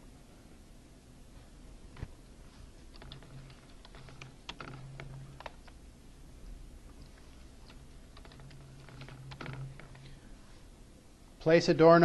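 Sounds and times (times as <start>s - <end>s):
computer keyboard typing: 2.9s - 5.8s, 7.6s - 10.1s.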